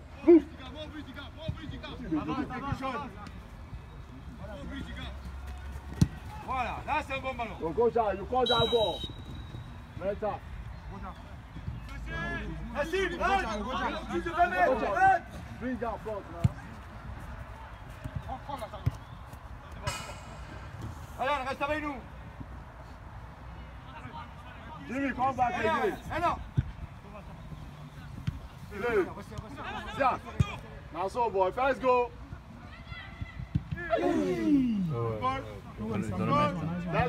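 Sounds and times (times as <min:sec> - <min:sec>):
man shouting: 0:33.8 - 0:35.0.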